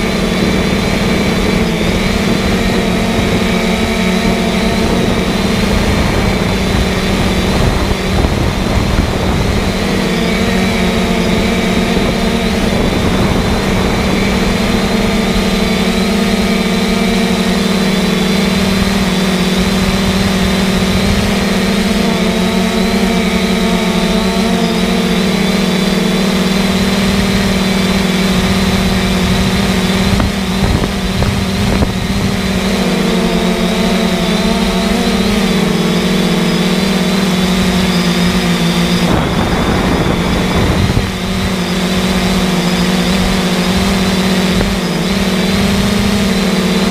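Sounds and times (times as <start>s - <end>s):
engine-like drone: 0.0s - 46.9s
thin high whine: 0.0s - 46.9s.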